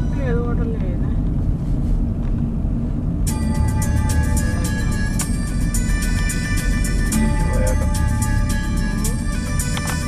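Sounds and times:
road vehicle rumbling: 0.0 - 10.0.

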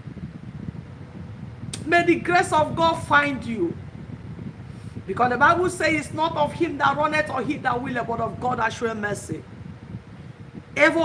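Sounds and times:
faint constant hum: 0.0 - 11.0
low background rumble: 0.0 - 11.0
woman speaking: 5.1 - 9.4.

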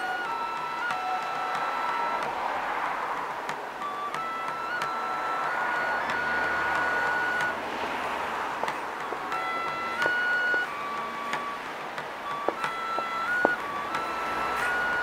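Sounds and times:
bamboo flute long notes: 0.0 - 15.0.

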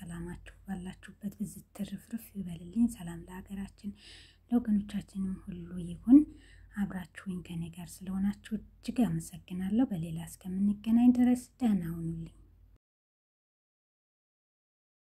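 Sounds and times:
person talking: 0.0 - 12.4.

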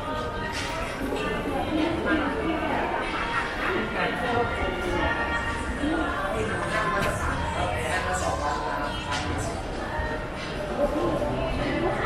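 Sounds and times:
shoppers' voices: 0.0 - 12.0.

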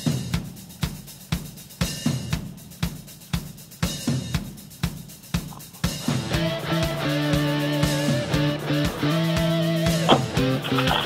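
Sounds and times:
drum kit playing steady beat: 0.0 - 11.0.

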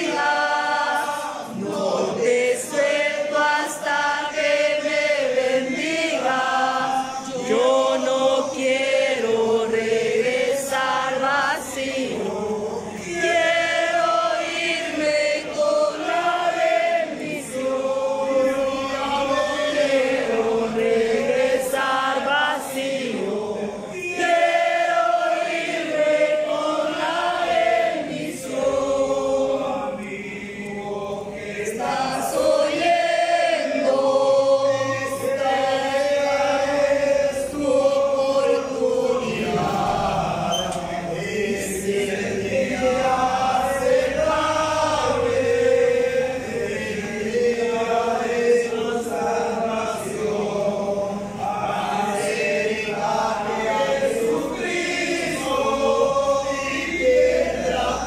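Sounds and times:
congregation singing: 0.0 - 58.0.

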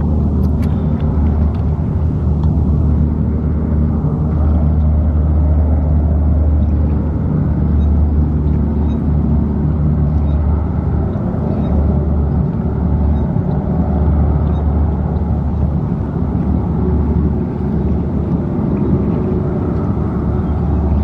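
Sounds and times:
hovercraft drone: 0.0 - 21.0.

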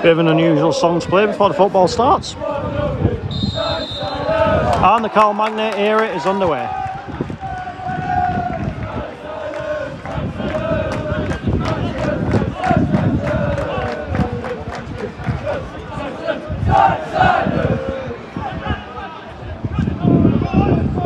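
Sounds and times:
football crowd chanting: 0.0 - 19.4
crowd noise: 0.0 - 21.0.

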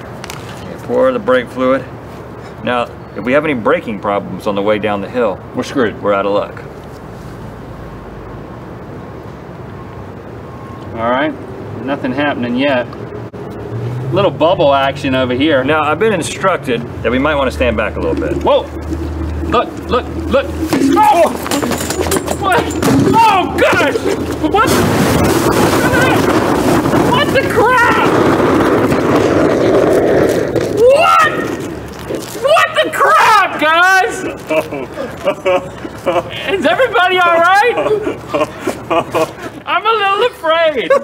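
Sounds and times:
distant traffic: 0.0 - 41.0
loud rushing flame jet: 17.8 - 32.5
wind on microphone: 24.0 - 32.5.

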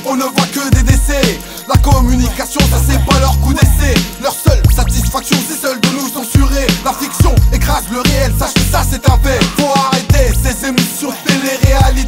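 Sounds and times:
rapping over a beat: 0.0 - 12.0
heavy repeating bass line: 0.7 - 5.4, 6.4 - 10.8, 11.6 - 12.0.

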